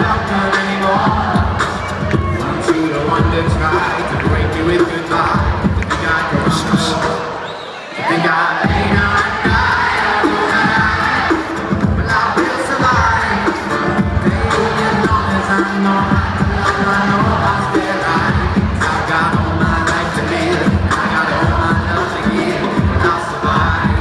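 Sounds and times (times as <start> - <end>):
beatboxed beat: 0.0 - 24.0
crowd singing and cheering: 0.0 - 24.0.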